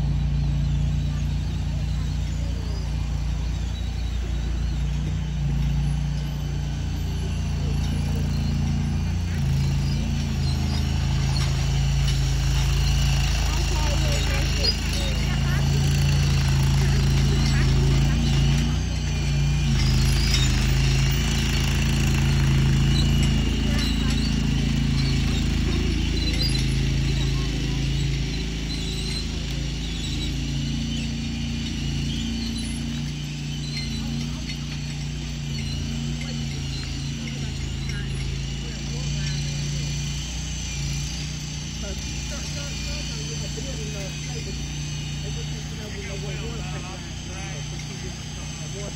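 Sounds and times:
machine engine humming: 0.0 - 48.9.

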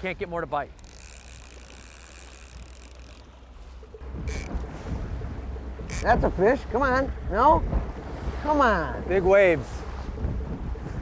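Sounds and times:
wind buffeting microphone: 2.5 - 11.0
low rumble: 3.2 - 11.0.

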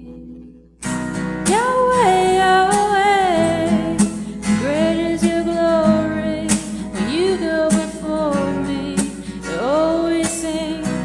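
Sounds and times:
acoustic guitar strumming: 0.0 - 11.0
woman singing: 1.4 - 11.0.

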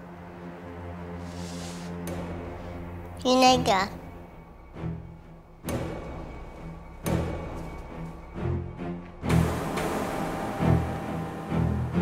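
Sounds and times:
tense dramatic music: 0.0 - 12.0.

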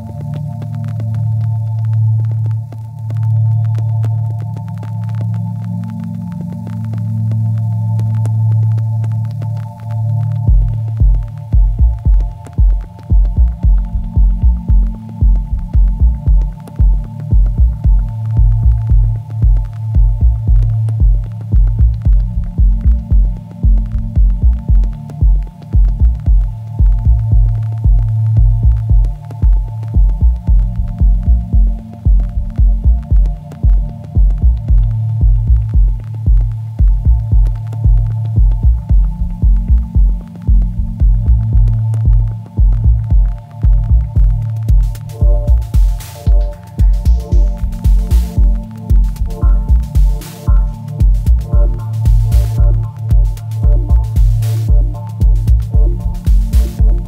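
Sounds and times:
electronic dub music: 0.0 - 57.0.

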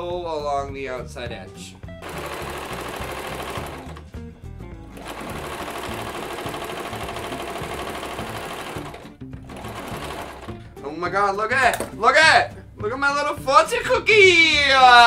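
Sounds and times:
electric sewing machine stitching: 2.0 - 4.1, 5.0 - 10.6.

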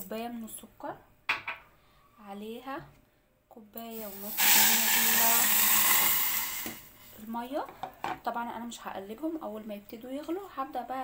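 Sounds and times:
water pouring onto sugar: 4.0 - 6.8.

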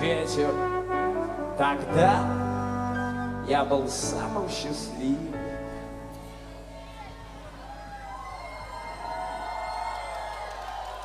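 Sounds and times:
band and orchestra holding chords: 0.0 - 7.6.

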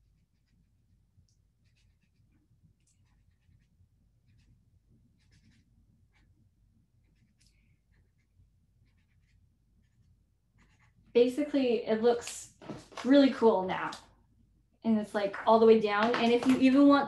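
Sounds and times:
highlighter scratching on paper: 0.0 - 0.7, 1.6 - 6.4, 7.0 - 11.0.

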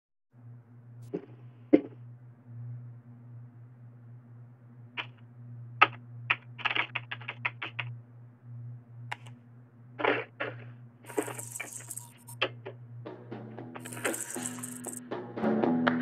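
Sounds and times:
low electrical hum: 0.4 - 15.0
computer keyboard typing: 5.8 - 7.9, 11.1 - 12.4, 13.8 - 15.0.

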